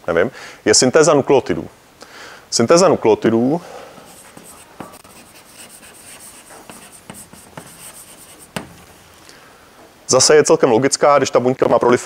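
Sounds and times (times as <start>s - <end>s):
chalk scratching on blackboard: 4.0s - 9.0s
chalk tapping on blackboard: 4.0s - 9.0s.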